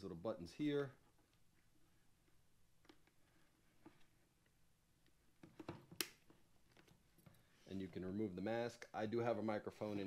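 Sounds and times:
helmet face mask clicks: 0:05.9 - 0:06.4.

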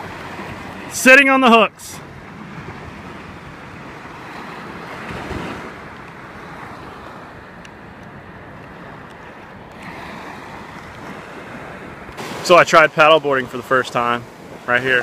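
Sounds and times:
small waves washing: 0:00.0 - 0:15.0
wind buffeting microphone: 0:02.0 - 0:12.5.

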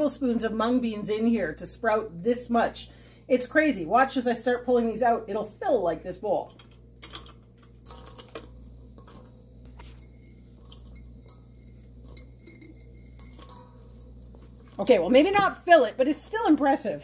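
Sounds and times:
bean sprouts rustling: 0:06.0 - 0:17.0
light ticks in steel bowl: 0:06.4 - 0:17.0.

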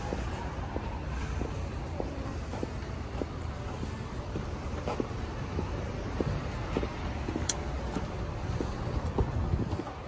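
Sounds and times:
light footsteps: 0:00.0 - 0:10.0
road traffic rumble: 0:00.0 - 0:10.0.

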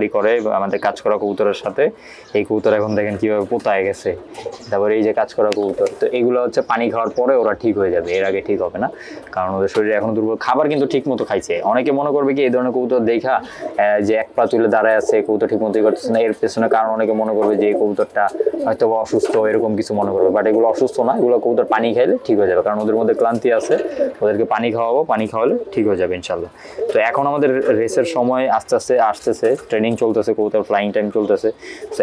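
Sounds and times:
man talking: 0:00.0 - 0:32.0
person speaking: 0:00.0 - 0:32.0
pigeons cooing: 0:00.0 - 0:32.0.

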